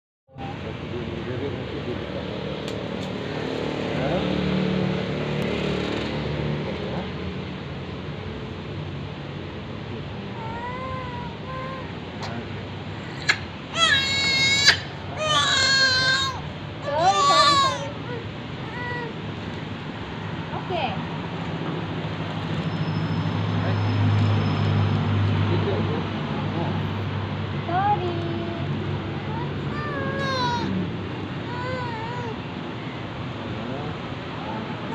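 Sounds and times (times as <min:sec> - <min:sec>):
infant wailing: 0:10.4 - 0:19.2, 0:29.2 - 0:30.8, 0:31.4 - 0:32.5
infant whimpering: 0:10.4 - 0:19.2, 0:29.2 - 0:30.8, 0:31.5 - 0:32.5
newborn baby crying: 0:10.4 - 0:19.2, 0:29.2 - 0:30.8, 0:31.4 - 0:32.5.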